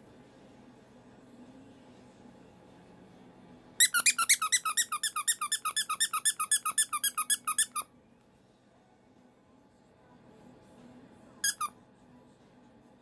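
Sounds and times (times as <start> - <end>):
rubber squeaky toy squeaking: 3.8 - 7.9, 11.4 - 11.7.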